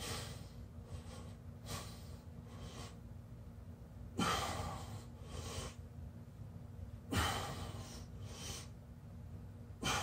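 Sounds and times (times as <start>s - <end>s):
man breathing heavily: 0.0s - 3.2s, 4.1s - 5.9s, 7.0s - 8.8s, 9.7s - 10.0s.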